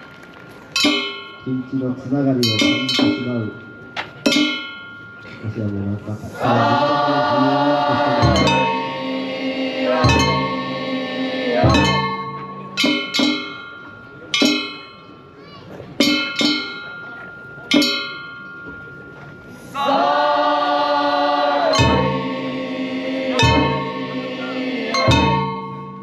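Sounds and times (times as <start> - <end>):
metal bell or gong strikes: 0.8 - 5.3, 8.1 - 9.0, 9.8 - 10.9, 11.6 - 15.1, 21.7 - 22.4, 23.3 - 26.0.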